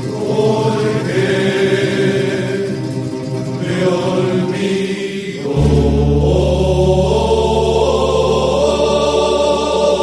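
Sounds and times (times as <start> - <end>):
vocal ensemble singing wordless chords: 0.0 - 10.0.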